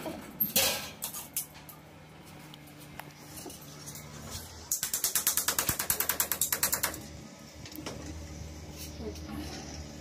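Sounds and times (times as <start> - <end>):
ratchet-like mechanical clicks: 4.7 - 7.1.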